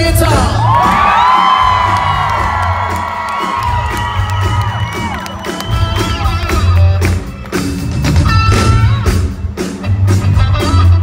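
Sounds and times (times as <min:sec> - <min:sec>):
rock band playing live: 0:00.0 - 0:11.0
crowd cheering and whooping: 0:00.3 - 0:08.4.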